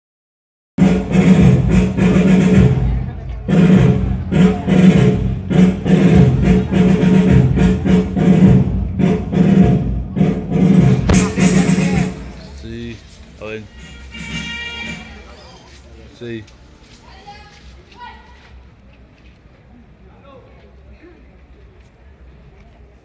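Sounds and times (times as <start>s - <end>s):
loud music with singing: 0.8s - 12.4s.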